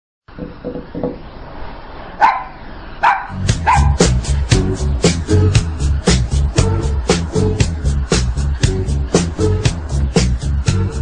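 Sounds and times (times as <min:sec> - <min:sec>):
small dog barking: 0:02.2 - 0:04.0
music with strong beat: 0:03.3 - 0:11.0.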